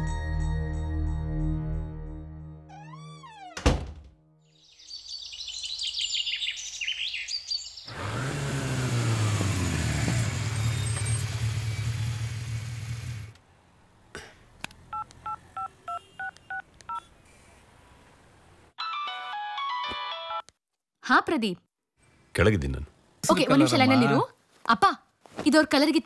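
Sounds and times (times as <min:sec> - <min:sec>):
motorcycle engine running: 0:07.9 - 0:13.4
two-tone phone beeps: 0:15.3 - 0:17.0.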